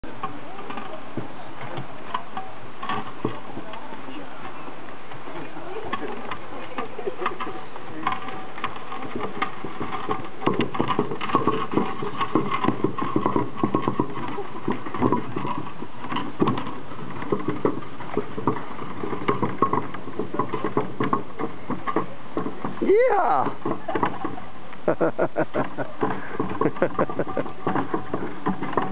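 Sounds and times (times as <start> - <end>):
cart wheels and hooves clattering: 0.0 - 28.9.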